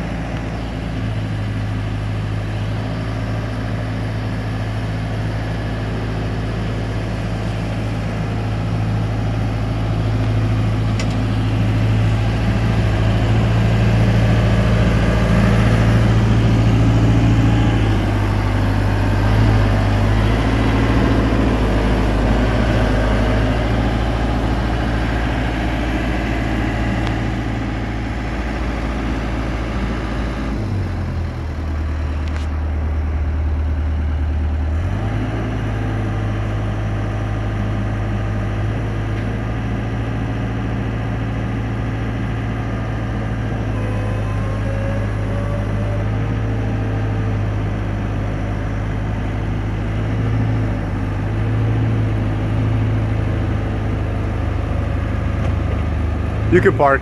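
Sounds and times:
boom lift engine running: 0:00.0 - 0:57.0.

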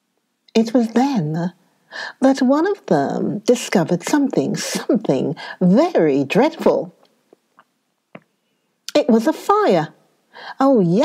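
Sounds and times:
woman narrating: 0:00.5 - 0:07.0, 0:08.9 - 0:11.0.

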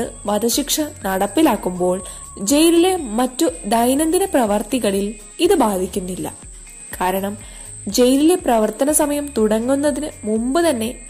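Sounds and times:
soft background music: 0:00.0 - 0:11.0
steady high-pitched tone: 0:00.0 - 0:11.0.

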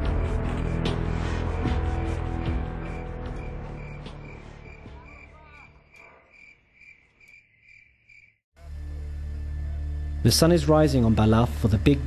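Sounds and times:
background music: 0:00.0 - 0:05.7, 0:08.6 - 0:12.0
cricket chirping: 0:01.6 - 0:08.4.

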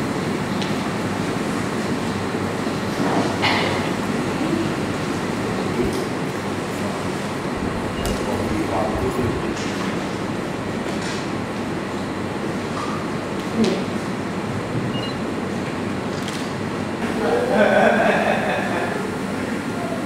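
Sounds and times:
rumbling hall noise: 0:03.8 - 0:12.6.

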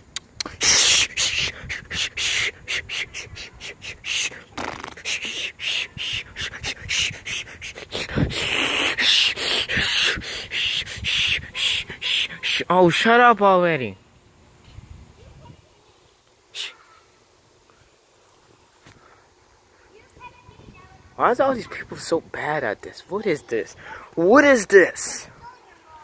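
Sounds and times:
person beatboxing: 0:00.2 - 0:12.6.

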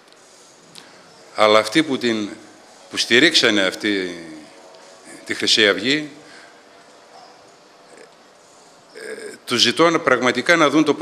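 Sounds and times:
faint room noise: 0:00.0 - 0:11.0
soft breath sounds: 0:00.1 - 0:01.3, 0:06.2 - 0:09.1.

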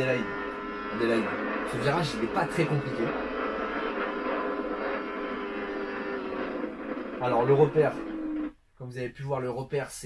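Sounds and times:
motorcycle engine at high revs: 0:00.0 - 0:08.5.

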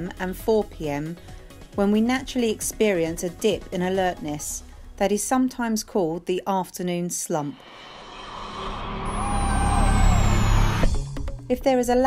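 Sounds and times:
high tone sliding downward: 0:07.6 - 0:11.1.

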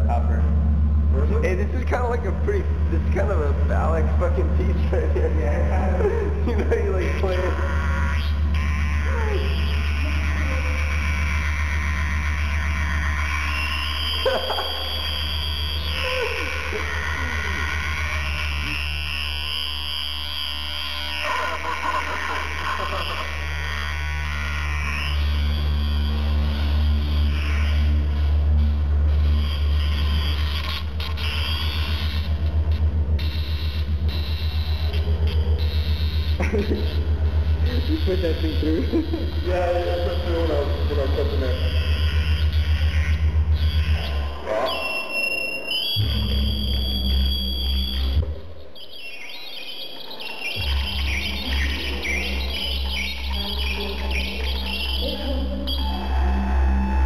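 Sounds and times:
deep bass drone: 0:00.0 - 0:44.6, 0:46.0 - 0:48.7, 0:50.6 - 0:57.0
high whistling tones gliding: 0:13.4 - 0:17.7, 0:43.5 - 0:57.0.

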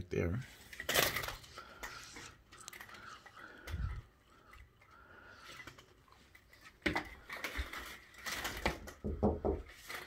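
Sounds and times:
rustling handling noise: 0:00.3 - 0:09.0, 0:09.6 - 0:10.0.

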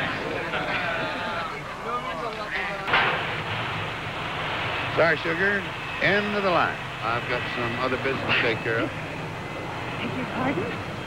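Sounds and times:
loud bang: 0:02.9 - 0:07.6
voice: 0:05.0 - 0:08.9.

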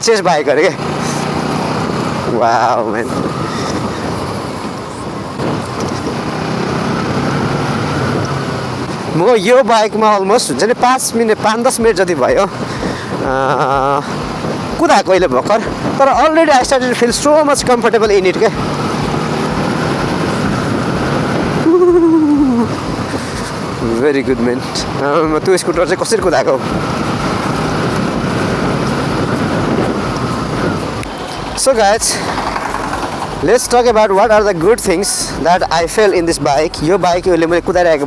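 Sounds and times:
motorcycle engine cruising: 0:00.0 - 0:38.0
wind and road noise: 0:00.0 - 0:38.0
person humming: 0:21.6 - 0:22.7.

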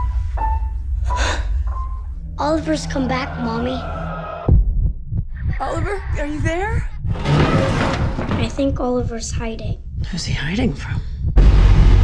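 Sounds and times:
low rumbling drone: 0:11.2 - 0:12.0.

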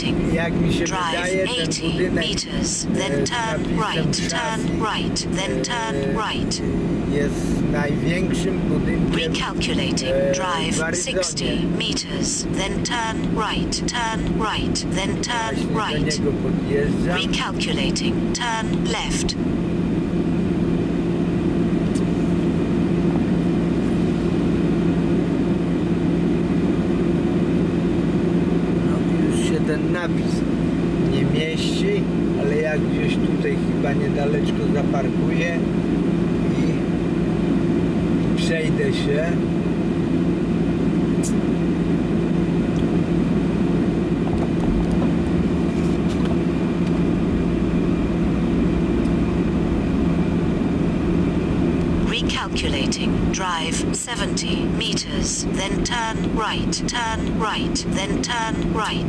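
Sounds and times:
car engine idling in cabin: 0:00.0 - 0:25.3.

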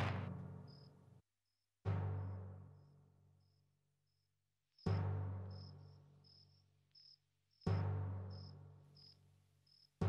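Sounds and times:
crickets chirping: 0:05.5 - 0:10.0.

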